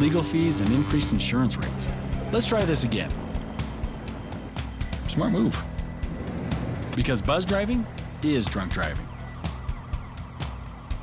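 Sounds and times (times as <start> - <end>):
faint wailing siren: 0.0 - 11.0
quiet music: 0.0 - 11.0
street ambience: 0.0 - 11.0.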